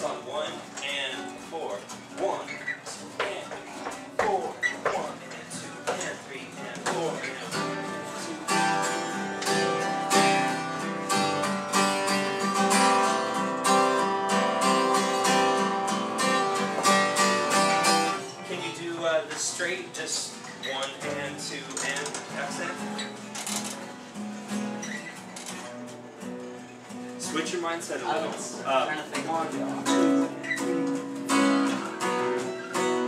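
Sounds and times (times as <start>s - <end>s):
acoustic guitar strumming: 0.0s - 33.0s
person talking: 18.4s - 23.0s, 27.2s - 30.3s.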